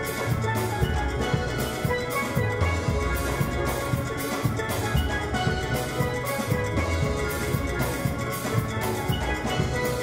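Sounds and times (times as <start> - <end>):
drum kit beat: 0.0 - 10.0.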